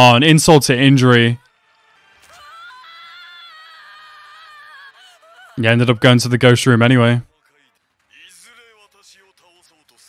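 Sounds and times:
high-pitched wailing cry: 0:02.4 - 0:05.6.

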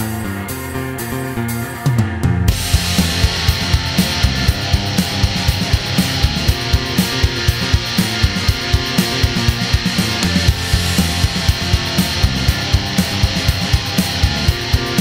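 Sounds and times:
instrumental rock music: 0:00.0 - 0:15.0.

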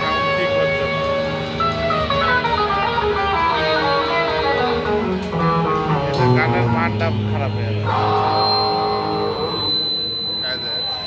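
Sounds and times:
live band held chord: 0:00.0 - 0:11.0.

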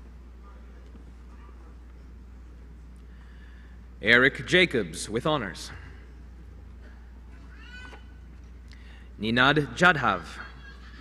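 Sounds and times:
low electrical hum: 0:00.0 - 0:11.0
faint high-pitched cry: 0:07.3 - 0:08.2.

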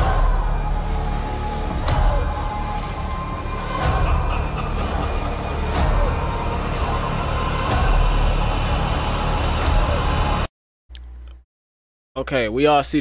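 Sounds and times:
dark dramatic music: 0:00.0 - 0:10.5.

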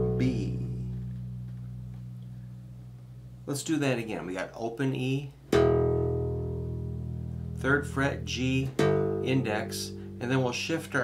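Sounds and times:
electric bass low note: 0:00.0 - 0:03.9, 0:05.6 - 0:11.0.

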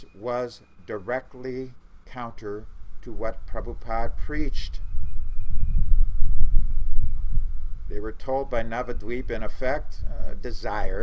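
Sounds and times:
wind buffeting microphone: 0:01.9 - 0:11.0.

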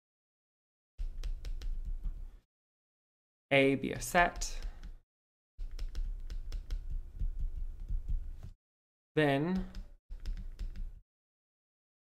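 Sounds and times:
stylus tapping on graphics tablet: 0:01.0 - 0:02.2, 0:03.9 - 0:05.0, 0:05.6 - 0:08.6, 0:09.6 - 0:11.0.

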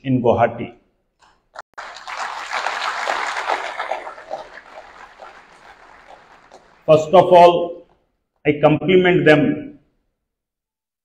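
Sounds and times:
audience applause: 0:01.8 - 0:07.3.

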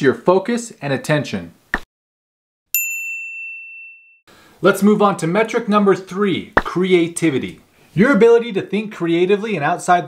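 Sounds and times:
bright ding chime: 0:02.7 - 0:04.2.

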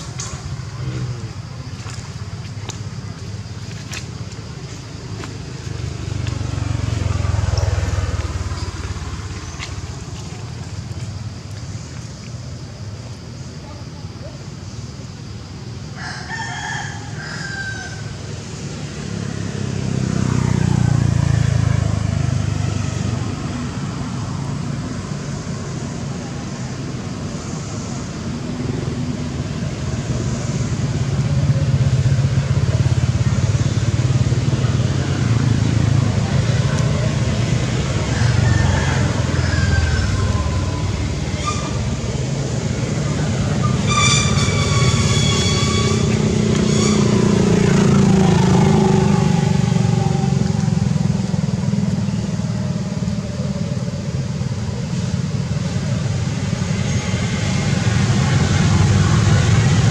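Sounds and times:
motorbike passing: 0:00.0 - 0:12.3, 0:17.8 - 0:59.9
traffic rumble: 0:00.0 - 0:59.9.

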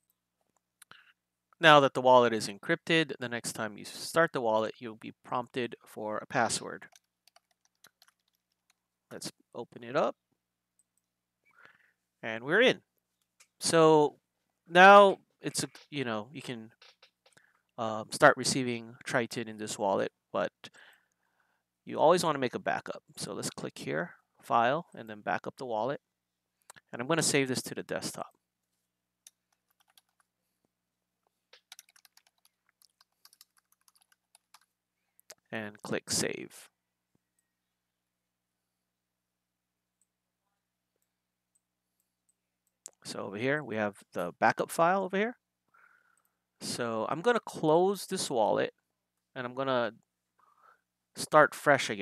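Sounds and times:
faint keyboard keystrokes: 0:06.8 - 0:08.8, 0:29.3 - 0:30.3, 0:31.5 - 0:34.7.

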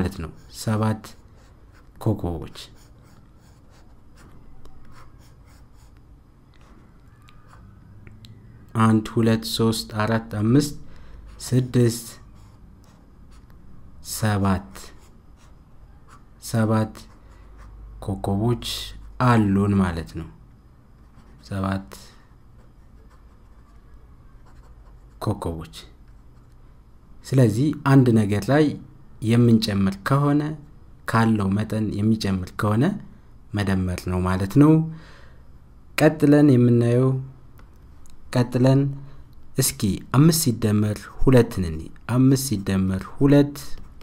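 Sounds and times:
low steady hum: 0:00.0 - 0:44.0
stylus scratching on drawing tablet: 0:00.2 - 0:06.0, 0:21.0 - 0:21.5, 0:22.6 - 0:25.3.

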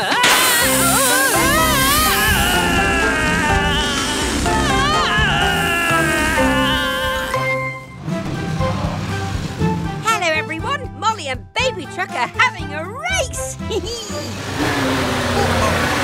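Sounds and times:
deflating balloon squeal: 0:00.0 - 0:07.6
cartoon background music: 0:00.0 - 0:16.0.

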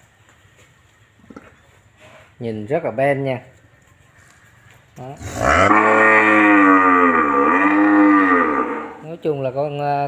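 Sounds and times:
cow mooing: 0:05.2 - 0:09.1.

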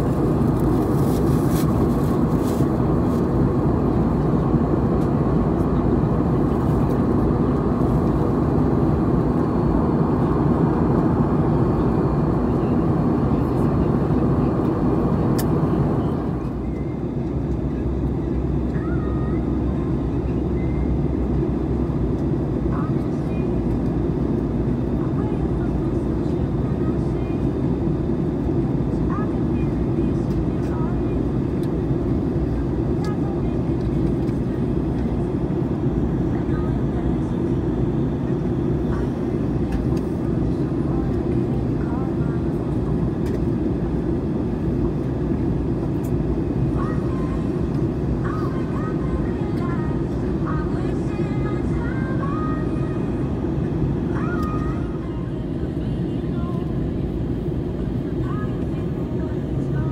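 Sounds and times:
jet airliner cabin noise: 0:00.0 - 0:59.9.

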